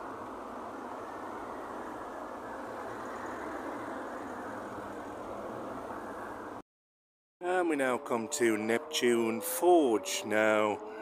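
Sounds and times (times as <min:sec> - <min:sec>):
muffled road traffic: 0:00.0 - 0:06.6, 0:07.4 - 0:11.0.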